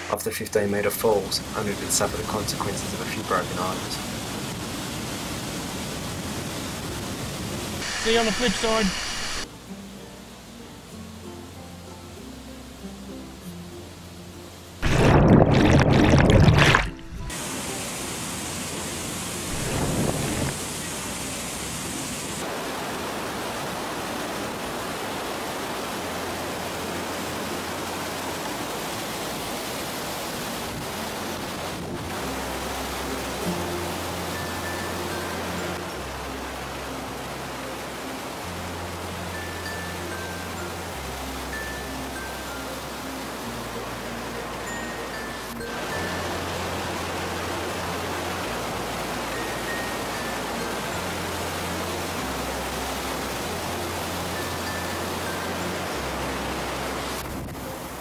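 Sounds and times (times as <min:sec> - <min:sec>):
river rapids rushing: 0:00.0 - 0:00.3, 0:00.9 - 0:09.6, 0:16.5 - 0:58.0
high bell-like melody: 0:34.3 - 0:36.0, 0:39.3 - 0:43.2, 0:44.3 - 0:46.8, 0:49.2 - 0:51.6, 0:54.3 - 0:56.2.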